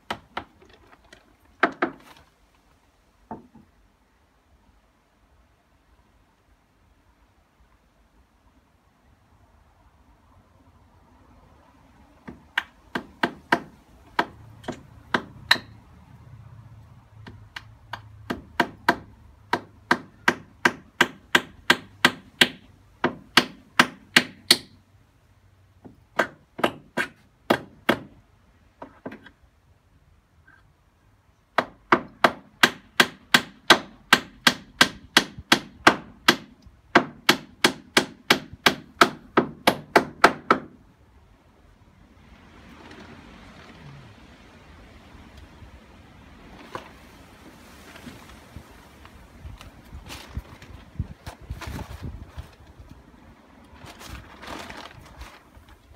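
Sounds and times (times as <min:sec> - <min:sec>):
hammer striking nails into wood: 0:12.2 - 0:15.8, 0:17.3 - 0:24.8, 0:25.8 - 0:28.2, 0:31.6 - 0:40.8.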